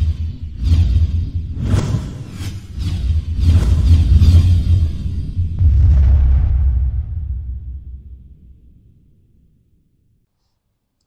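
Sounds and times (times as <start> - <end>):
deep rumble: 0.0 - 10.2
whooshing sweeps: 1.4 - 8.3.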